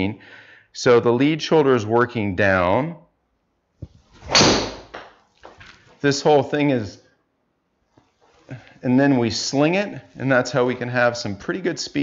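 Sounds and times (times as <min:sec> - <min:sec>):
golf club hitting ball: 0:03.8 - 0:05.1.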